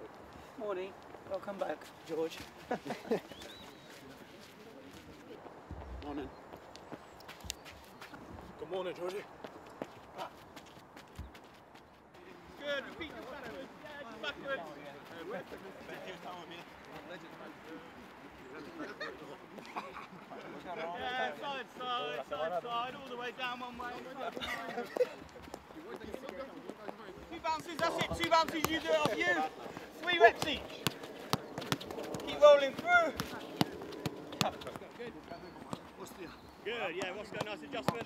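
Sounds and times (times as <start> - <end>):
men talking and calling: 0.0 - 38.0
faint voices: 23.8 - 38.0
football kicked: 30.1 - 34.9, 37.0 - 38.0.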